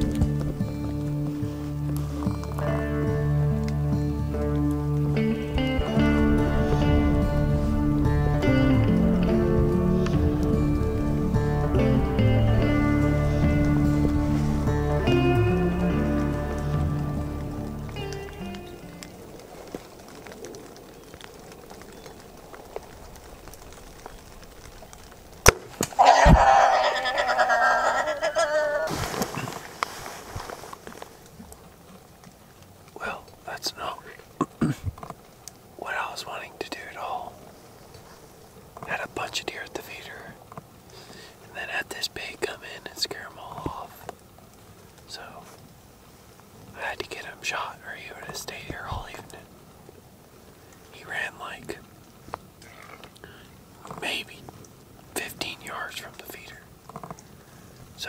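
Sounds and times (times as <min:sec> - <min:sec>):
hog running off commotion: 0:19.6 - 0:31.3
bow shot crack: 0:25.4 - 0:26.6.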